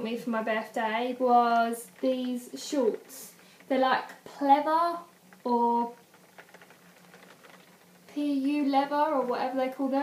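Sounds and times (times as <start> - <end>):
heavy rain patter: 0.8 - 8.5.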